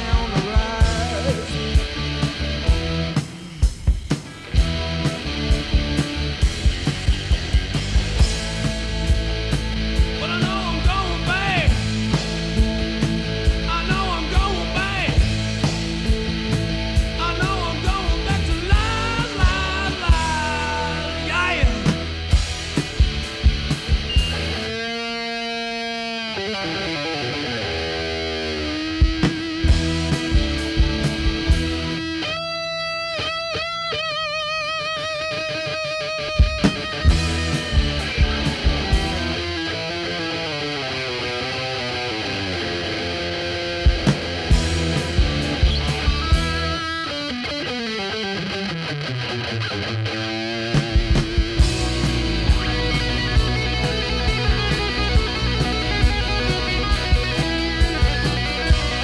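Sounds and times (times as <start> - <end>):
bass guitar: 0.0 - 59.0
drums: 0.0 - 59.0
electric guitar bending notes: 0.0 - 59.0.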